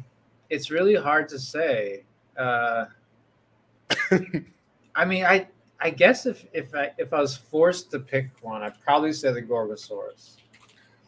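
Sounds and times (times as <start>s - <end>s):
man coughing: 3.9s - 4.4s.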